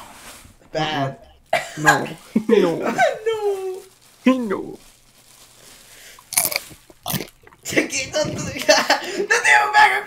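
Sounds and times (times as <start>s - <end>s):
chewing: 6.1s - 8.4s
crunchy bite: 6.2s - 7.7s.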